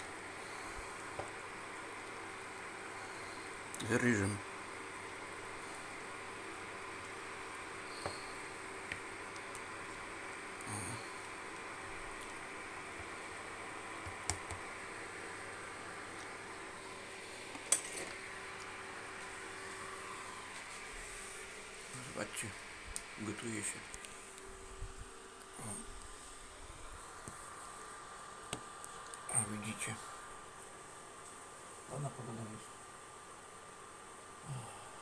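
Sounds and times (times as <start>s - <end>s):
induction hob fan hum: 0.0s - 35.0s.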